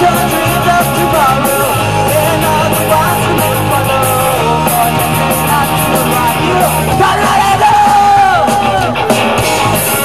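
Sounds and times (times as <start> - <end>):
loud rock band playing: 0.0 - 10.0.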